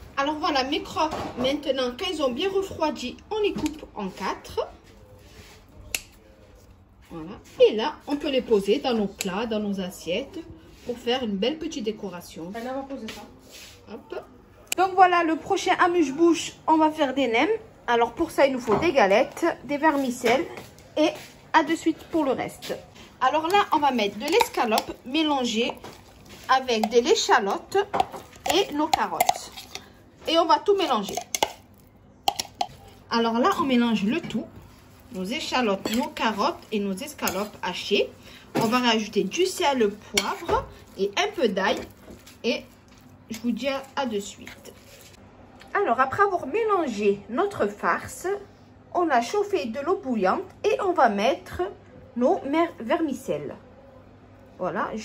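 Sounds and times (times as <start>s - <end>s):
metal spoon striking ceramic bowl: 28.0s - 29.8s, 31.0s - 31.6s, 32.3s - 32.8s.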